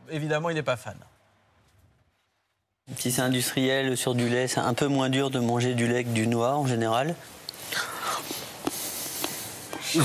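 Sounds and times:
soft rustling hiss: 0.9s - 10.0s.

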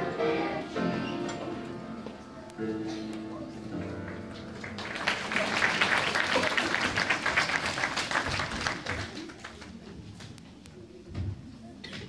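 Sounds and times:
music: 0.0s - 5.4s
audience applauding: 3.8s - 9.8s.

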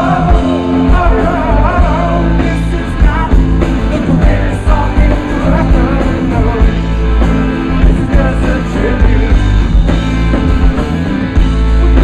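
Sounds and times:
live rock band playing loud: 0.0s - 12.0s.

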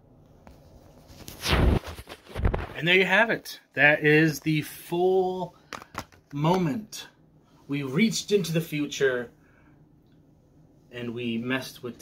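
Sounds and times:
rubbing thump on phone microphone: 0.5s - 2.8s.

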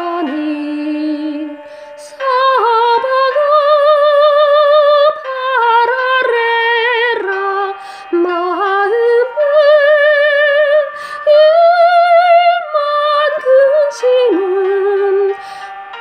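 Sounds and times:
woman singing soprano: 0.0s - 16.0s
singer breathing: 1.6s - 2.1s, 7.8s - 8.1s, 10.9s - 11.3s, 15.4s - 16.0s.

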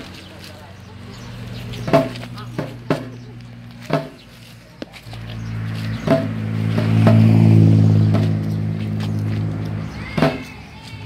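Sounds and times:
loud low drone: 5.1s - 10.0s
frame drum struck: 6.0s - 8.5s.

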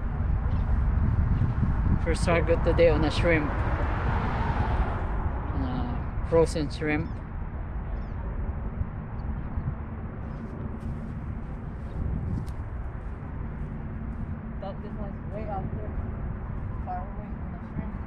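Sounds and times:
wind buffeting microphone: 0.0s - 18.0s.

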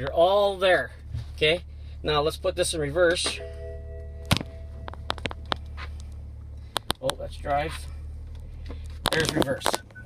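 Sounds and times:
diesel engine idling hum: 0.0s - 10.0s
chime tone: 3.4s - 5.2s.

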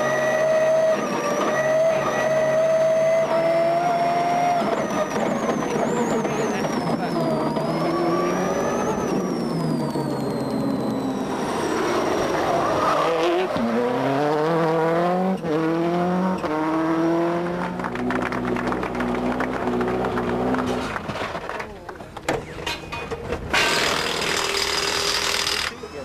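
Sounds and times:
rally car engine accelerating: 0.0s - 21.7s.

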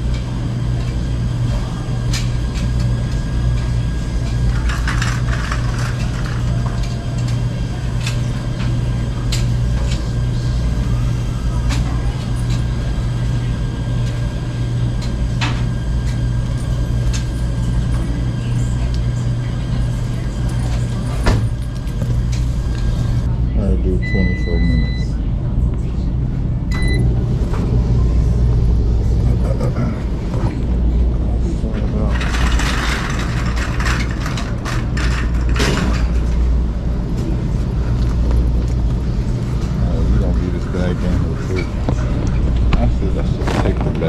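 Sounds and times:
washers and dryers humming: 0.0s - 44.0s
machine electronic beep: 24.0s - 25.1s, 26.7s - 27.1s
dryer loading knocks and clatter: 31.7s - 36.4s.

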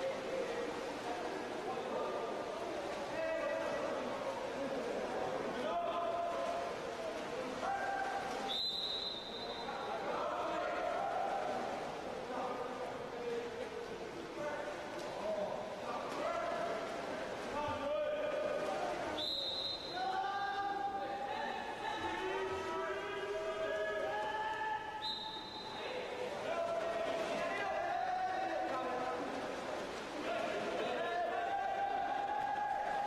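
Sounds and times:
referee's whistle: 8.5s - 9.9s, 19.2s - 20.0s, 25.0s - 25.8s
players calling out with echo: 17.5s - 29.3s.

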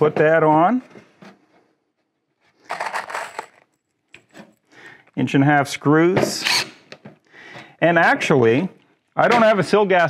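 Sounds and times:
screws rattling in plastic box: 2.6s - 3.8s.

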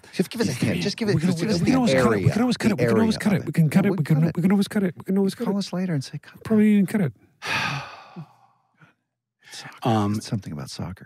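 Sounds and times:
person talking: 0.0s - 7.1s, 9.5s - 10.7s
person sighing: 7.4s - 8.6s.

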